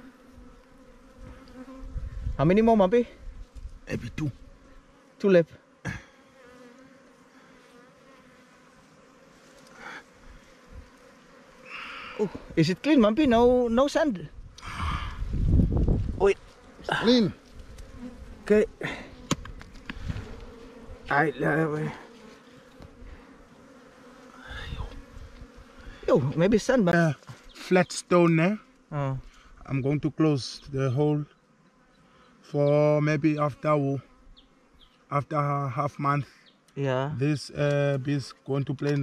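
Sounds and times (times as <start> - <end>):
bees buzzing: 0.0 - 35.6.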